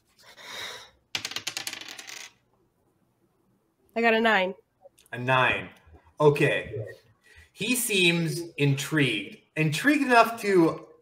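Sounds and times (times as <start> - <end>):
dice clattering on hard surface: 1.1 - 2.4.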